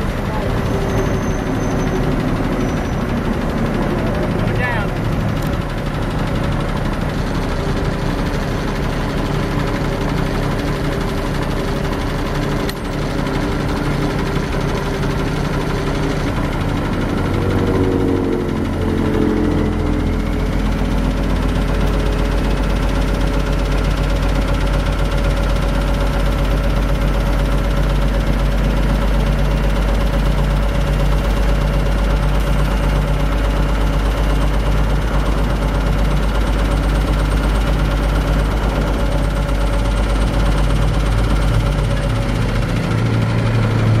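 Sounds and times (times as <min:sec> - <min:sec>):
diesel truck engine running: 0:00.0 - 0:44.0.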